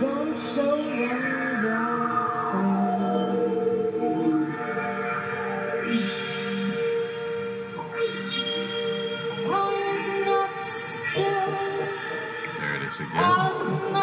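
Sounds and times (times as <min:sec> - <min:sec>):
ambient electroacoustic viola tones: 0:00.0 - 0:14.0.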